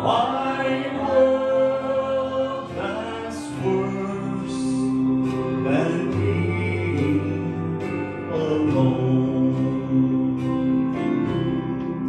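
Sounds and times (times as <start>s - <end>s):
instrumental accompaniment: 0.0s - 12.0s
man singing into a microphone: 0.0s - 12.0s.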